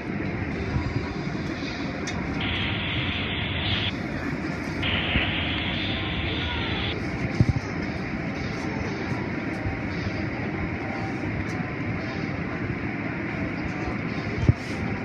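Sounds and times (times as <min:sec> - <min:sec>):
car wash water and machinery: 0:00.0 - 0:15.0.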